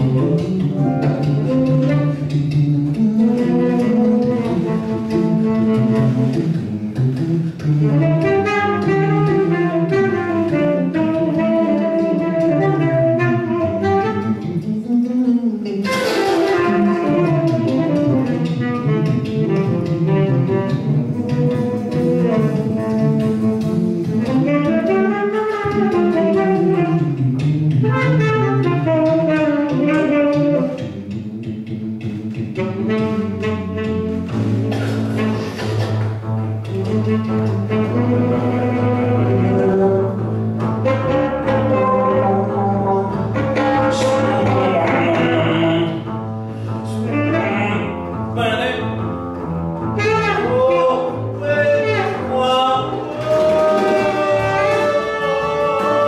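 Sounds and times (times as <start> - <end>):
drums: 0.0 - 46.3, 46.9 - 56.0
saxophone melody: 0.0 - 56.0
walking double bass: 0.0 - 56.0.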